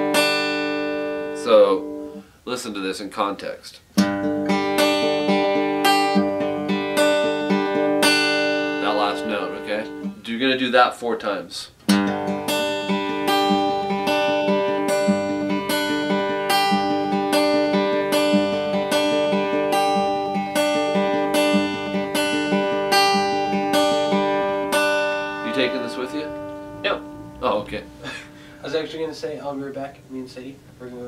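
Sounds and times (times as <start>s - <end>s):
fingerpicked acoustic guitar: 0.0s - 2.4s, 3.8s - 11.0s, 11.7s - 30.7s.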